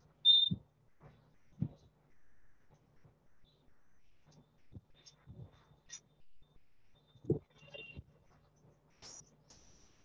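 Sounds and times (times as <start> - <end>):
short high-pitched beep: 0.3 - 0.6.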